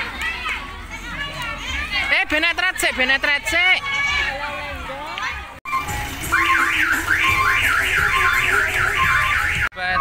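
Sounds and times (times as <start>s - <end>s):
electronic siren horn whooping: 5.7s - 9.7s.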